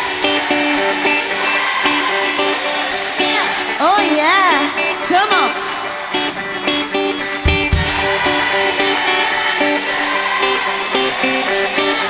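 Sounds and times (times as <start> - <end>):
electric guitar riff: 0.0 - 12.0
steady drum beat: 7.2 - 10.3.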